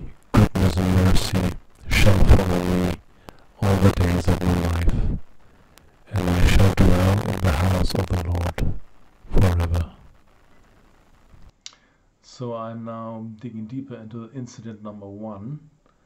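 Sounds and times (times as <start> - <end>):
buzzy distorted voice-like bursts: 0.0 - 5.4, 6.0 - 10.2.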